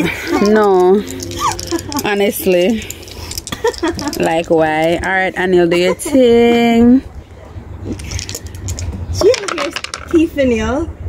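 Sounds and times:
wind rumble on microphone: 0.0 - 11.0
dice rattling in a hand: 0.3 - 5.2, 8.0 - 10.3.

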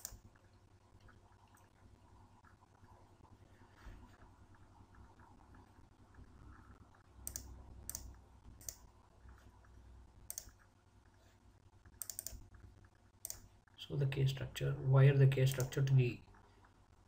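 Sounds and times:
computer mouse button clicking: 7.3 - 8.8, 10.3 - 10.6, 12.0 - 12.4.

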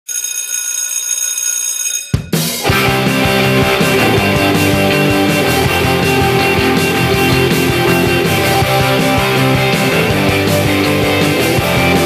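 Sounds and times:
alarm clock ringing: 0.0 - 4.1.

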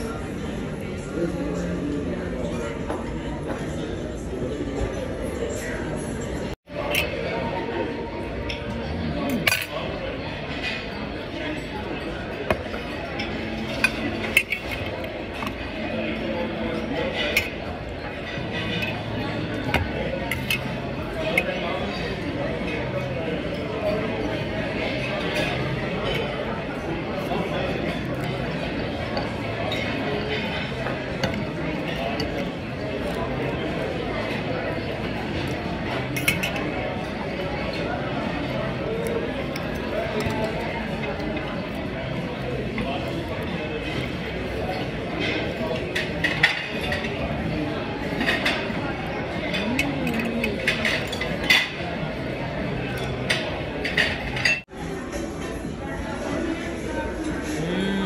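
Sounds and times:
background chatter of diners: 0.0 - 58.0
cutlery clinking against metal bowl: 6.8 - 7.3, 8.4 - 22.4, 35.3 - 37.1, 39.0 - 41.5, 48.0 - 52.0, 52.8 - 54.6.

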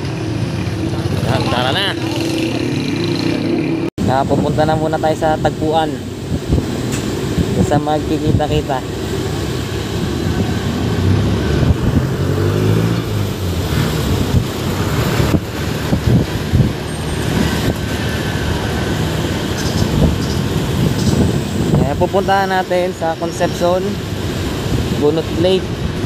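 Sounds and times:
motorcycle engine: 0.0 - 3.9
road and wind noise: 0.0 - 26.0.

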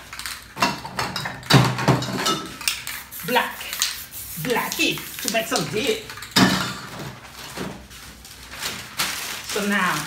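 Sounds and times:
metal spray cans clinking: 0.0 - 7.2.

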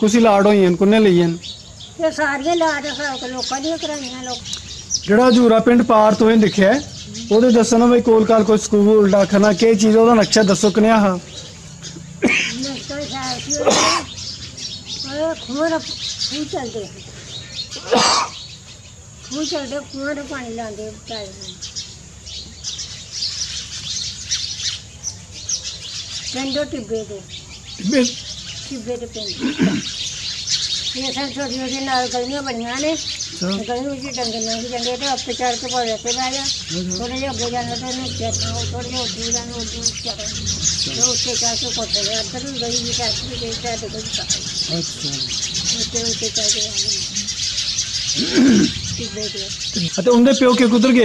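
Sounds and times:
small birds chirping: 0.0 - 51.0
person's voice: 33.4 - 40.3
low background rumble: 33.8 - 48.1.

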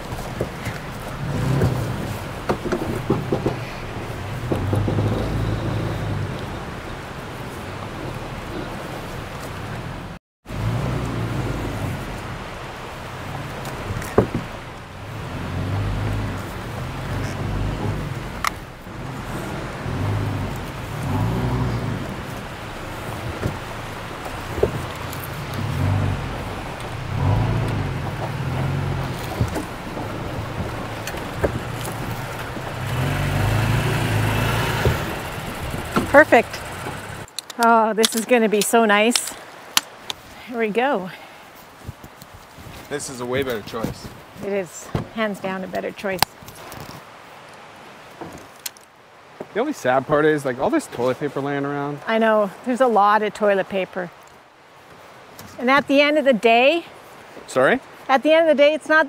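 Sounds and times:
truck engine running: 0.0 - 37.3.

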